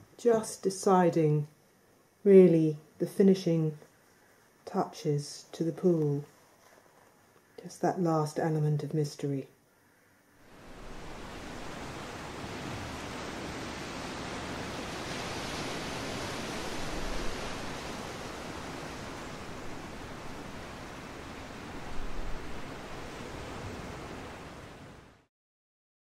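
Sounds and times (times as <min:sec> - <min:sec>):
ocean surf rushing: 0:10.4 - 0:25.3.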